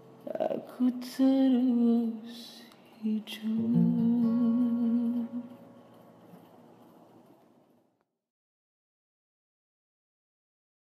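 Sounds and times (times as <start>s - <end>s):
guitar: 0.0s - 7.2s
man singing with vibrato: 0.3s - 5.6s.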